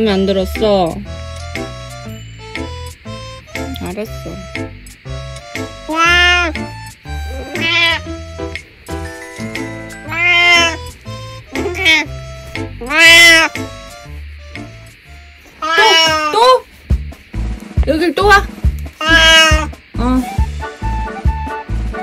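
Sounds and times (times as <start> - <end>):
background music with steady beat: 0.0 - 15.6, 16.3 - 22.0
cat meowing: 5.8 - 8.2, 10.0 - 10.9, 11.5 - 12.2, 12.8 - 13.7, 15.6 - 16.7, 19.0 - 19.8.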